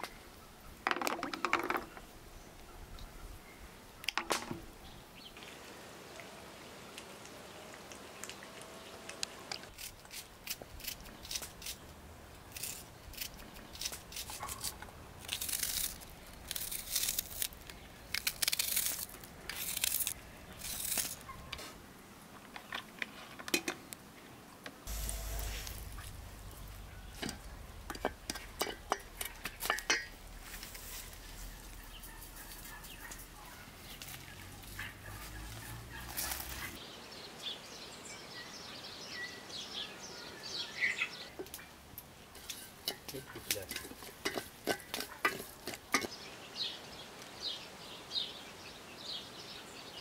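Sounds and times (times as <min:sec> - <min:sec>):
low steady hum: 0:24.9 - 0:30.5.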